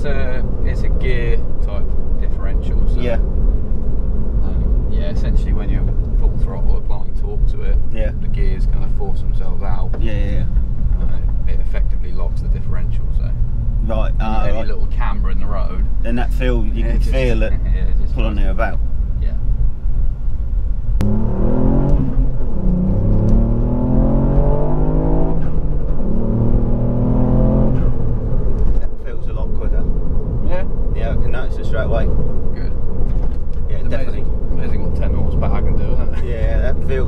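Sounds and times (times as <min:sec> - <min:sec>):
road and tyre rumble: 0:00.0 - 0:37.0
car engine revving under throttle: 0:21.0 - 0:37.0.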